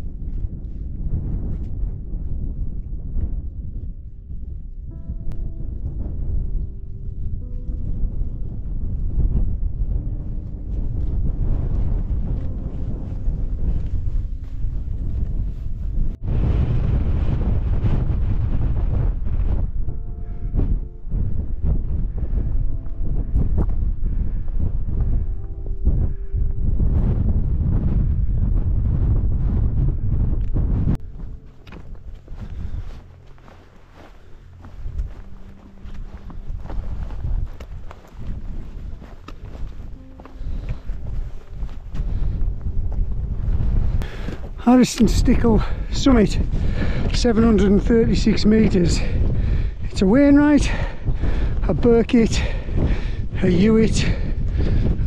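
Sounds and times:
wind buffeting microphone: 0:00.0 - 0:55.0.

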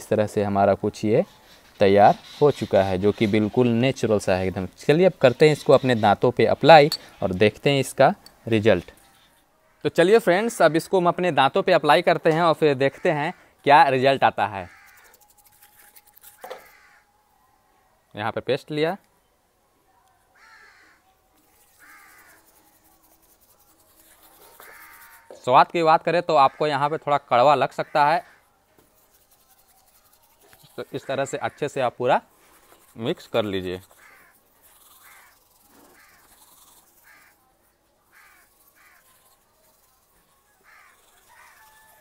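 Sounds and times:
faint crow caws: 0:09.0 - 0:09.9, 0:12.9 - 0:13.6, 0:14.6 - 0:15.2, 0:16.4 - 0:17.2, 0:20.4 - 0:21.1, 0:21.8 - 0:22.5, 0:24.5 - 0:25.4, 0:26.3 - 0:27.0, 0:27.7 - 0:28.6, 0:33.9 - 0:34.4, 0:35.0 - 0:36.4, 0:37.0 - 0:37.4, 0:38.1 - 0:39.1, 0:40.5 - 0:42.0.

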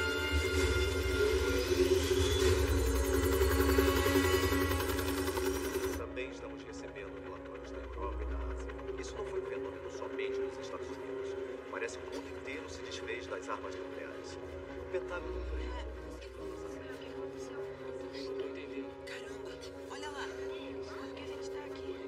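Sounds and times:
film background score: 0:00.0 - 0:22.0
steady low hum: 0:00.0 - 0:22.0.

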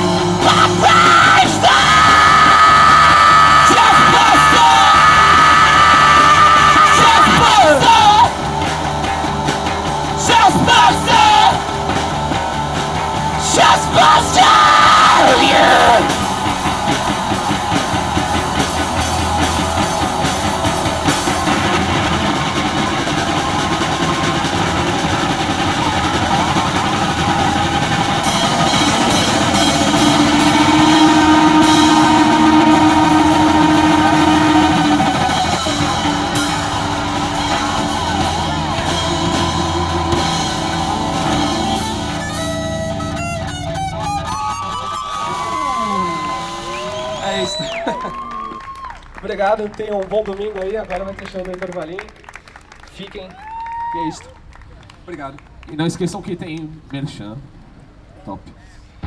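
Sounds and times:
electric guitar feedback: 0:00.0 - 0:47.7
rock band playing: 0:00.0 - 0:49.2.

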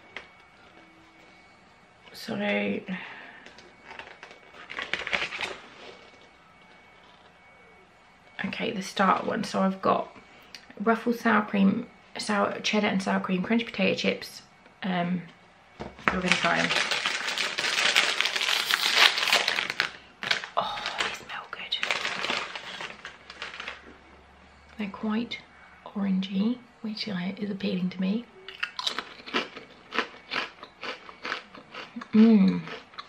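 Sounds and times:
crisp packet crinkling: 0:03.8 - 0:06.2, 0:16.0 - 0:23.9.

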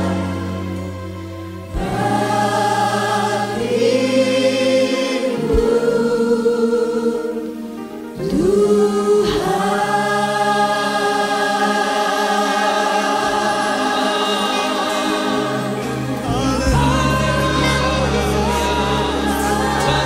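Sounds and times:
choir singing worship music: 0:00.0 - 0:20.0.

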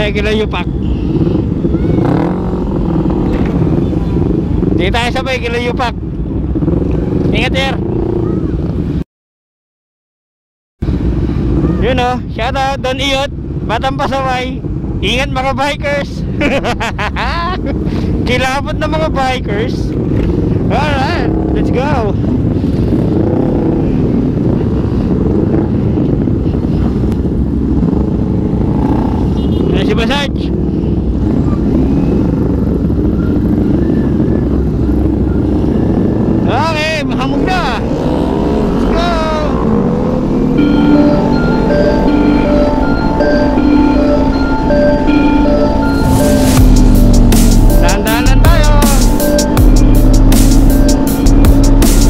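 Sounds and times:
wind noise on microphone: 0:00.6 - 0:05.0, 0:19.8 - 0:29.8
motorcycle engines idling: 0:16.1 - 0:46.0, 0:46.6 - 0:52.0
man's voice: 0:38.8 - 0:39.7, 0:47.4 - 0:49.6
short wavering high sound: 0:39.5 - 0:52.0.

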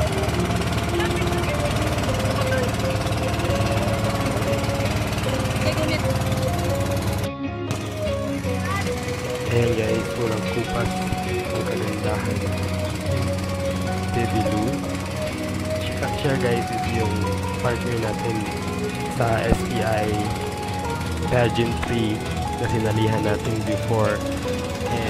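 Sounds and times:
boat engine running: 0:00.0 - 0:25.0
music: 0:00.0 - 0:25.0
voices: 0:00.0 - 0:25.0.

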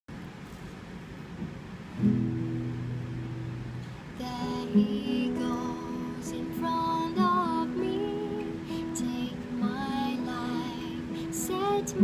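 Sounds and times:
classical guitar chord ringing: 0:02.0 - 0:12.0.

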